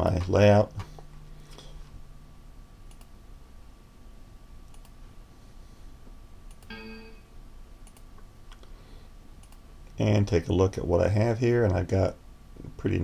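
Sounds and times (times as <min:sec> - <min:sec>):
computer mouse clicks: 0:02.9 - 0:03.1, 0:04.7 - 0:05.0, 0:06.5 - 0:06.8, 0:07.8 - 0:08.7, 0:09.4 - 0:09.6
short steady pitched tone: 0:06.7 - 0:07.4.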